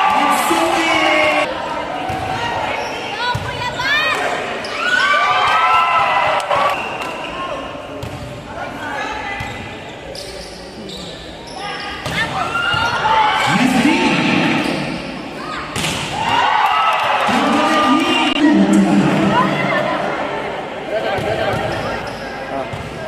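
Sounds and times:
voices in a large hall: 0:00.0 - 0:23.0
sneakers squeaking on court floor: 0:07.9 - 0:13.1, 0:21.2 - 0:23.0.

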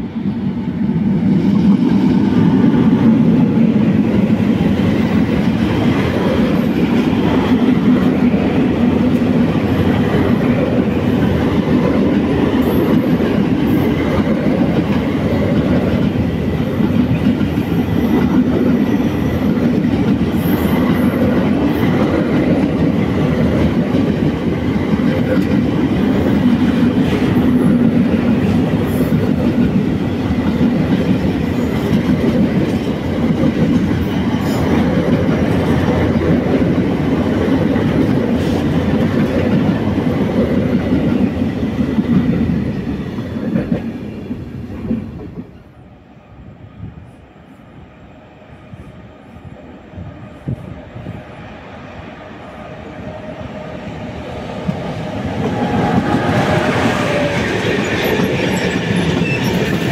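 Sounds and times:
freight train wheels on rails: 0:00.0 - 0:59.9.

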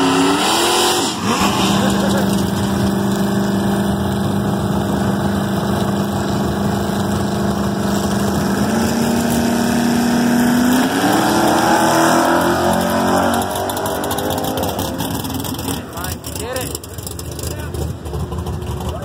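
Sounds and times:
drag car engine revving: 0:00.0 - 0:19.0.

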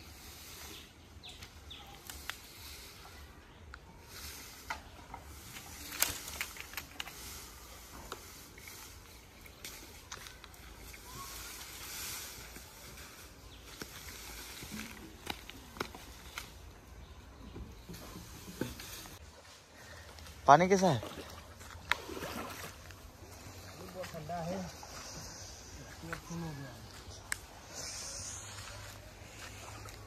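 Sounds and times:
footsteps on leaf litter: 0:22.8 - 0:30.0.

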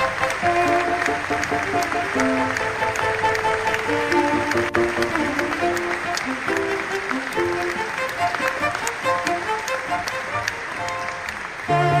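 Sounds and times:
audience applause: 0:00.0 - 0:12.0
small orchestra playing: 0:00.0 - 0:12.0.

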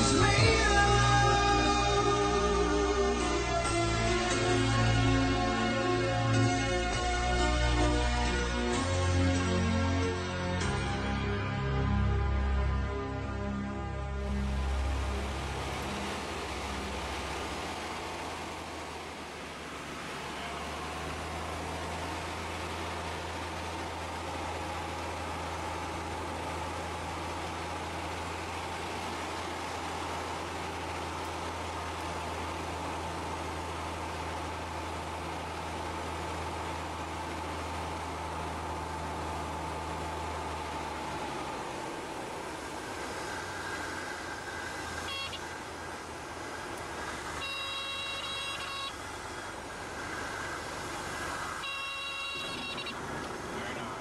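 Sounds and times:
low drone: 0:00.0 - 0:47.6
engine and airflow rush: 0:00.0 - 0:54.0
short high-pitched tones: 0:47.4 - 0:48.9, 0:51.6 - 0:53.0.

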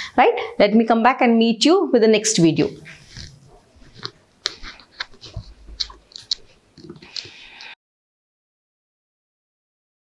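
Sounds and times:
footsteps walking away: 0:02.9 - 0:07.4.

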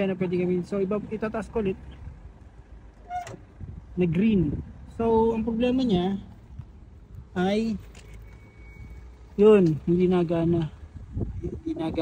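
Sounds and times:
excavator engine rumble: 0:00.0 - 0:12.0
short beep: 0:08.0 - 0:09.2.

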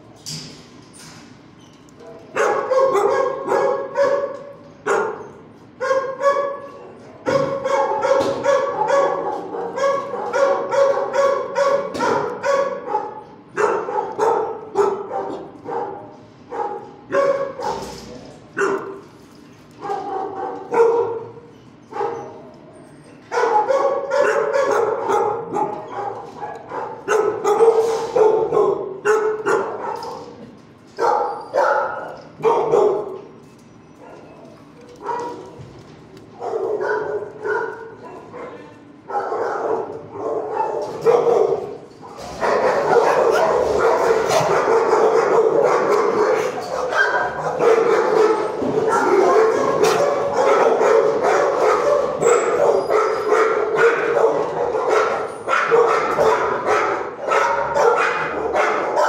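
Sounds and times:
dogs barking: 0:02.0 - 0:59.0.

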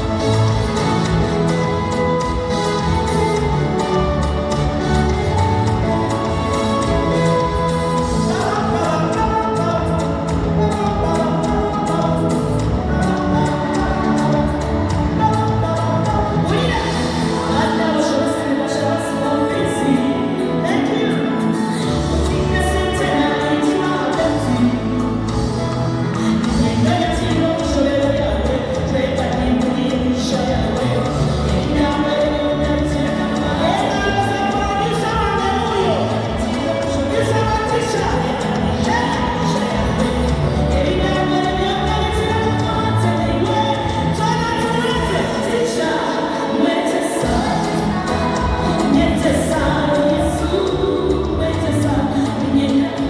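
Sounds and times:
backing music with steady beat: 0:00.0 - 0:53.0
woman singing into microphone: 0:00.0 - 0:53.0.

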